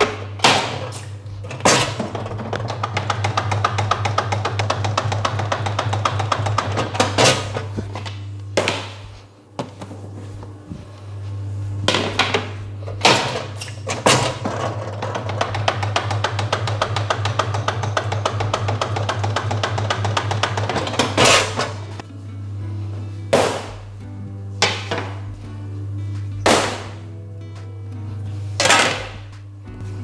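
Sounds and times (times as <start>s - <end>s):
dough machine rattling: 0.0s - 7.8s, 12.0s - 22.0s
steady low hum: 0.0s - 30.0s
background music: 15.2s - 30.0s.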